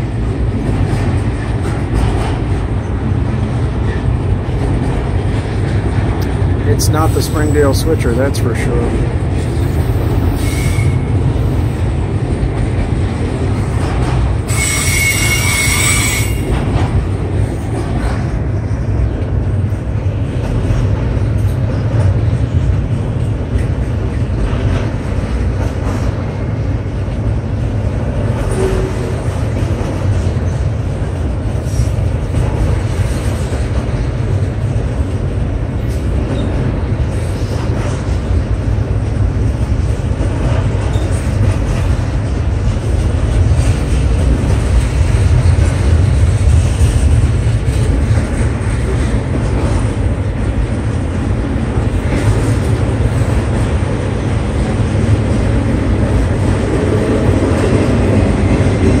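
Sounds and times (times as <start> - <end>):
freight train wheels rumbling: 0.0 - 59.0
wheel squeal: 10.4 - 11.1, 14.5 - 16.5.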